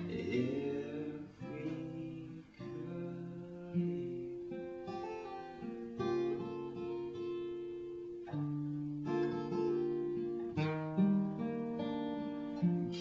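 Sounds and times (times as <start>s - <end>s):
acoustic guitar chords strummed: 0.0s - 13.0s.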